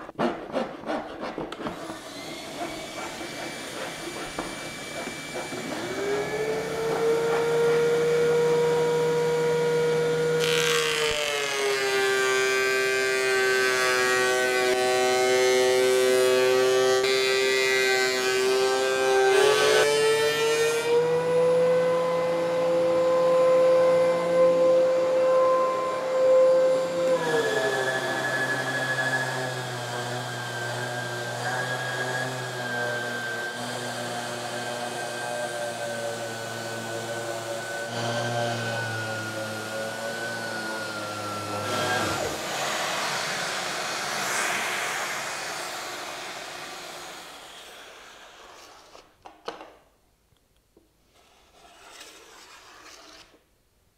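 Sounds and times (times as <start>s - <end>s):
thickness planer running: 1.7s - 49.0s
random orbital sander: 2.0s - 25.3s, 25.9s - 48.9s.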